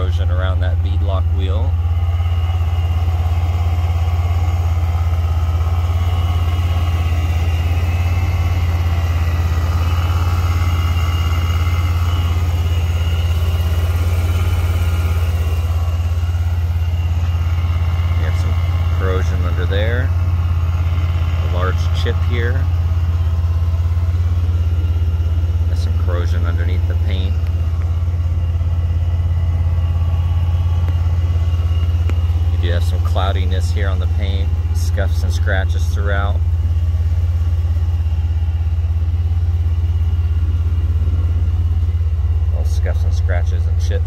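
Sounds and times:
car engine idling: 0.0s - 44.0s.

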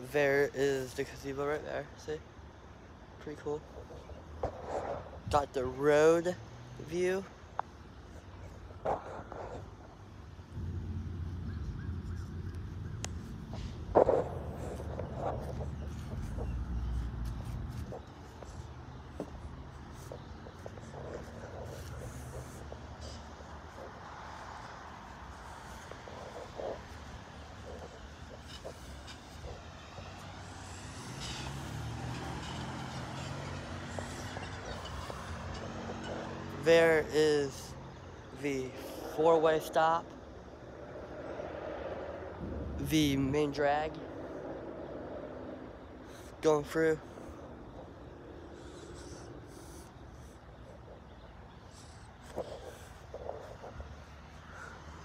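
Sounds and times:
traffic hiss: 0.0s - 55.0s
microphone rubbing on shirt: 3.7s - 5.4s, 8.1s - 10.0s, 13.2s - 31.0s, 47.3s - 54.3s.

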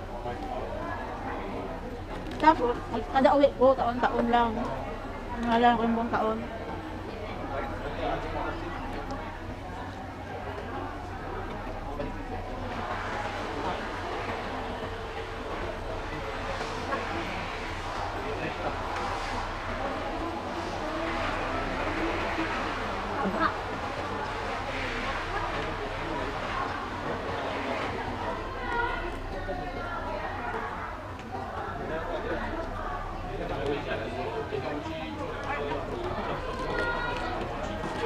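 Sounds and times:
faint indistinct voices: 0.0s - 38.0s
low hum: 0.0s - 38.0s.

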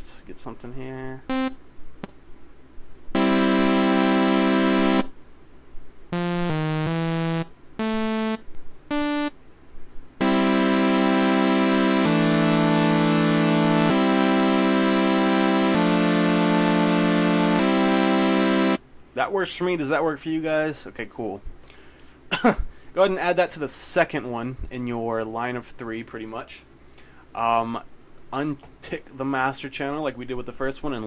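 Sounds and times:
synth chords: 1.3s - 1.6s, 3.2s - 5.2s, 6.1s - 9.4s, 10.2s - 18.8s
synth single notes: 1.3s - 1.6s, 3.2s - 5.2s, 6.1s - 9.4s, 10.2s - 18.8s.

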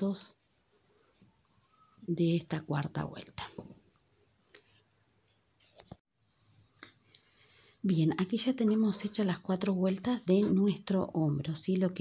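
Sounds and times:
woman speaking: 0.0s - 0.4s, 2.0s - 3.8s, 7.8s - 12.0s.

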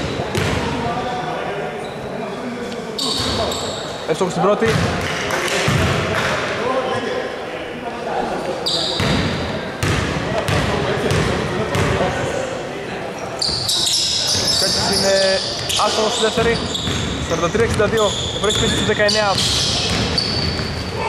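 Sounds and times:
echoing indistinct voices: 0.0s - 21.0s
short high squeaks: 13.4s - 17.4s
basketball bouncing on hardwood: 16.8s - 18.0s, 19.9s - 20.7s.

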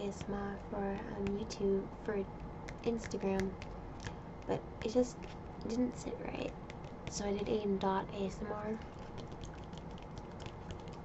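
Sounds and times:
soft rustles of book pages: 2.7s - 7.6s.

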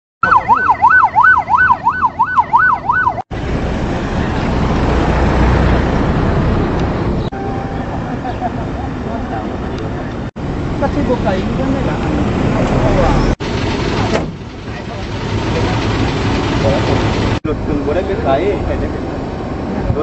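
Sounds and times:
emergency vehicle siren wailing: 0.2s - 3.3s.

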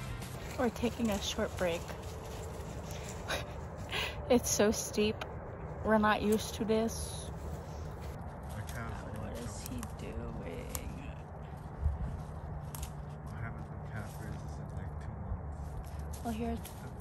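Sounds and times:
footsteps on snow and leaves: 0.0s - 5.1s, 5.7s - 17.0s.

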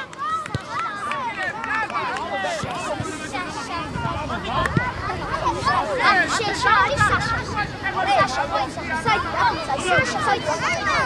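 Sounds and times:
sideline chatter: 0.0s - 11.0s.

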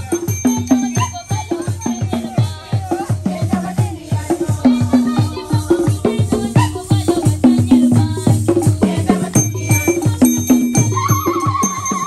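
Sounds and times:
high wavering tone: 0.0s - 2.4s, 9.3s - 12.0s
fast drumbeat: 0.0s - 12.0s.

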